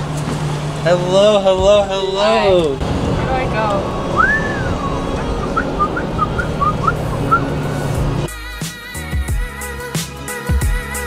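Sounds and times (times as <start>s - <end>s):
car cabin rumble: 0.0s - 8.3s
high whistle-like chirps: 4.2s - 7.9s.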